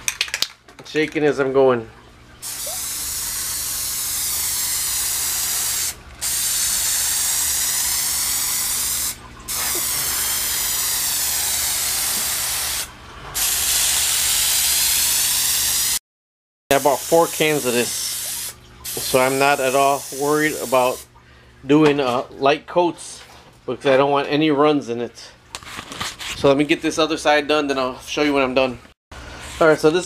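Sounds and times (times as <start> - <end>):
spray paint can spraying: 2.4 - 16.0, 16.7 - 21.0.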